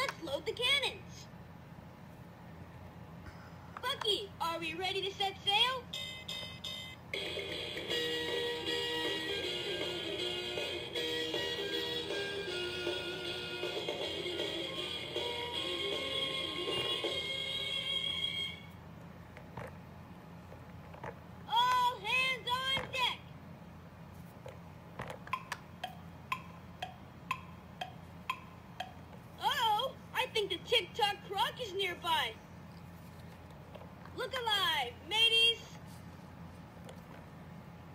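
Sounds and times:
toy playing electronic tune: 0:05.9 - 0:18.5.

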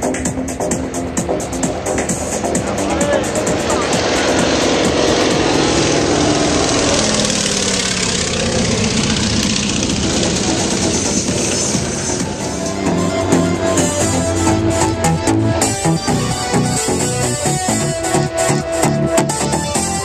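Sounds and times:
background music: 0:00.0 - 0:20.0
propeller plane flying overhead: 0:00.0 - 0:20.0.

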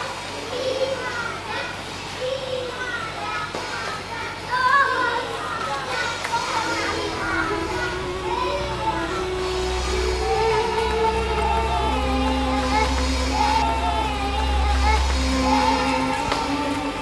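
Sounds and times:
children chattering and shouting: 0:00.0 - 0:17.0
background music with low bass: 0:06.7 - 0:17.0.

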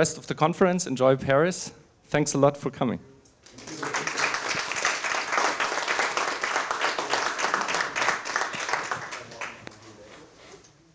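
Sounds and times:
audience applauding: 0:03.5 - 0:10.0.

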